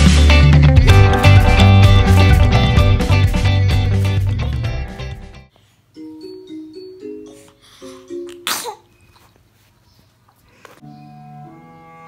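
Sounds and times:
strummed music: 0.0s - 5.4s.

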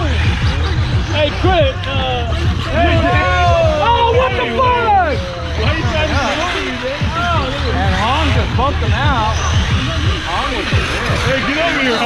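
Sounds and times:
steady low hum: 0.0s - 11.9s
men talking and exclaiming: 0.0s - 12.0s.

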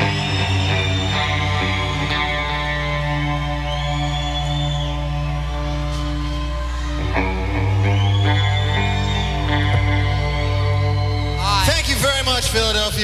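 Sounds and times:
rock band ringing chords: 0.0s - 13.0s.

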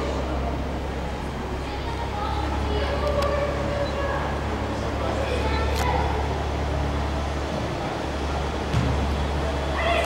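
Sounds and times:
sports hall hum and hiss: 0.0s - 10.0s.

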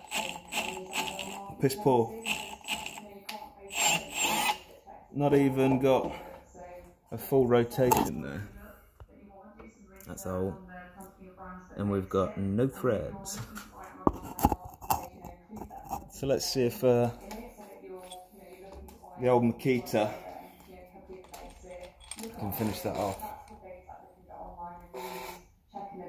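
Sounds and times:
drill motor stuttering clicks: 0.0s - 1.4s, 2.2s - 3.0s, 3.7s - 4.6s.

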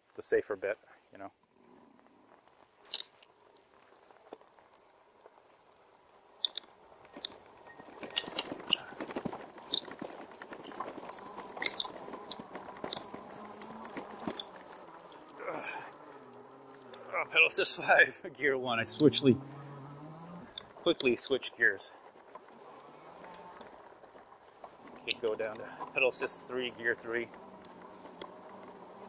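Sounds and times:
bike tyres rolling over bumpy grass: 0.0s - 29.0s
bike rattling over bumps: 1.5s - 29.0s.

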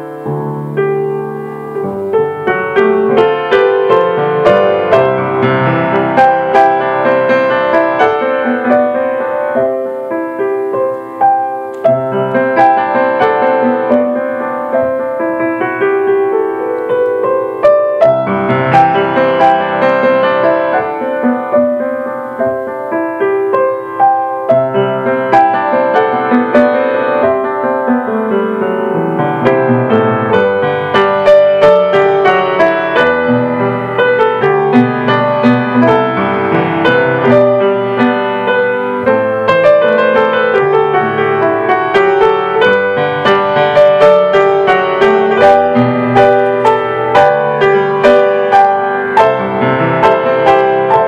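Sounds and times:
piano music: 0.0s - 51.0s.

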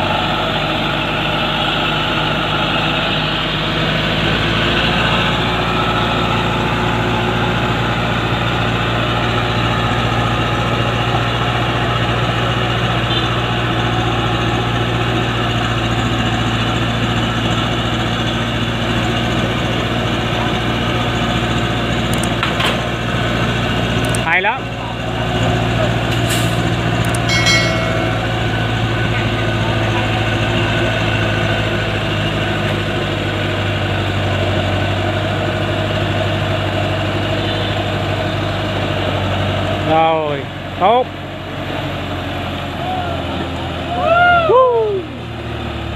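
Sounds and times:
diesel truck engine under load: 0.0s - 44.4s, 45.0s - 45.9s.

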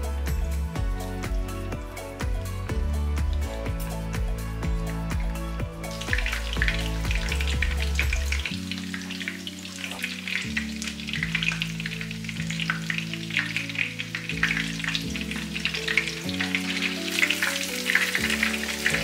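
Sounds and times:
oil sizzling and crackling in a pan: 3.2s - 19.0s.

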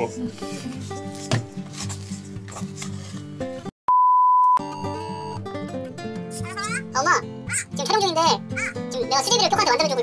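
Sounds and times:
background music: 0.0s - 3.7s, 4.6s - 10.0s.

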